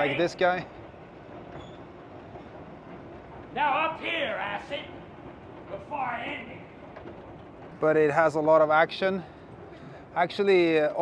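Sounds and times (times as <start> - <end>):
street rumble and hiss: 0.0 - 11.0.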